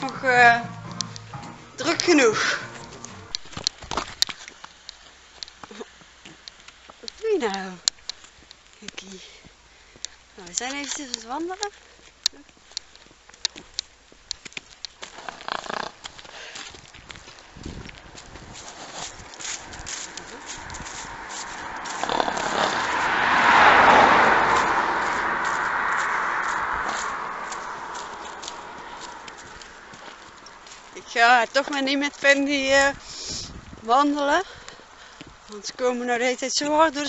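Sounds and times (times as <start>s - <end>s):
vehicle driving past: 0.0s - 3.6s, 19.6s - 30.6s
footsteps: 0.0s - 7.3s, 7.9s - 32.5s
pony hooves clopping: 0.0s - 23.1s, 24.5s - 32.9s.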